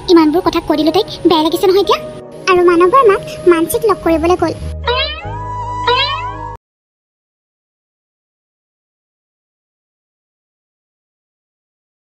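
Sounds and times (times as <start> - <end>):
background music: 0.0 - 6.6
cartoon falling cries: 4.8 - 6.6.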